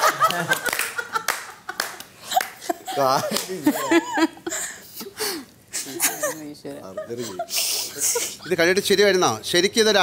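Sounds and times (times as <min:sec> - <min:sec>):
people clapping: 0:00.0 - 0:03.7
people laughing: 0:00.0 - 0:04.8.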